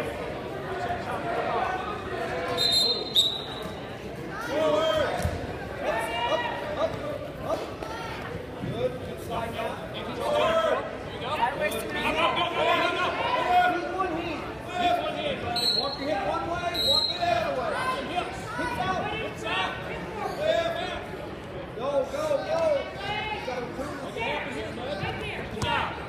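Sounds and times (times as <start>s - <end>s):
people shouting and calling out: 9.4s - 21.1s.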